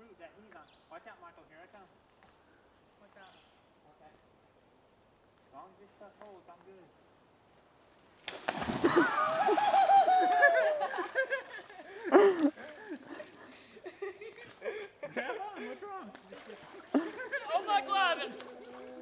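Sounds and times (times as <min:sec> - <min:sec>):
heavy splash into river: 0:08.2 - 0:11.7
water sloshing: 0:08.4 - 0:09.9, 0:16.0 - 0:19.0
laughter: 0:08.8 - 0:17.8
person shouting: 0:17.4 - 0:18.4.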